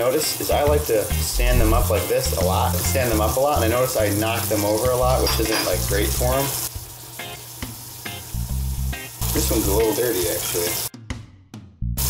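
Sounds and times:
water running from sink faucet: 0.0s - 10.9s
water splashing over metal valve: 0.5s - 6.7s.

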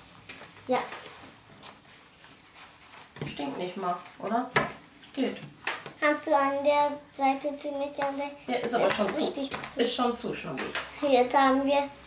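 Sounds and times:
soft scuffs: 0.4s - 4.2s.

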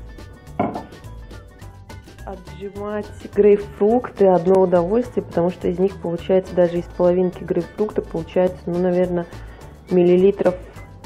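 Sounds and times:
soft background music: 0.0s - 11.0s
plastic jug set down on stone: 0.6s - 1.0s.

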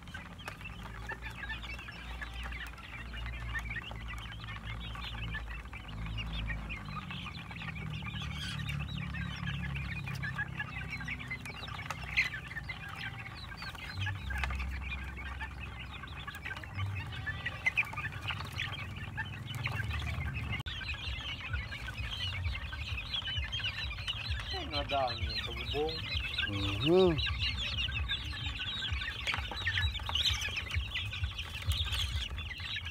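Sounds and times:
chickens chirping and clucking: 0.0s - 32.9s.

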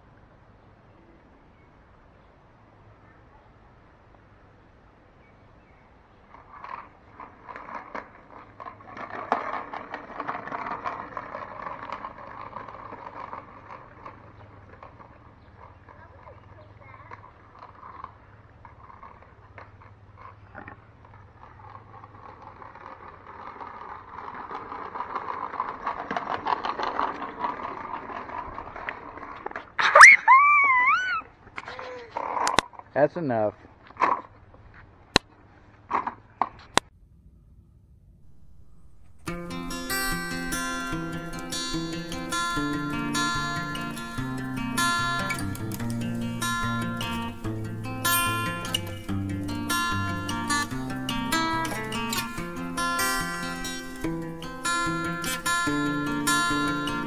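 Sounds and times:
toy wheels rolling on concrete: 5.4s - 36.9s, 38.2s - 57.0s
loud high wavering cry: 29.8s - 31.3s.

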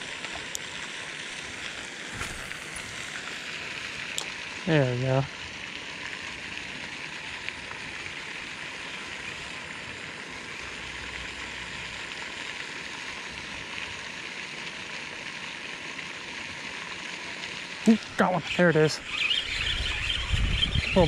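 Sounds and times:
fountain splashing water: 0.0s - 21.0s.

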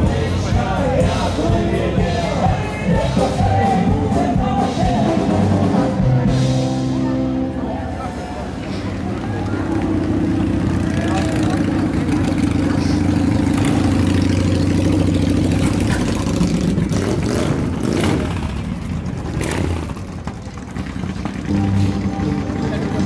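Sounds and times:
crowd voices: 0.0s - 23.0s
motorcycle engines running: 0.0s - 23.0s.

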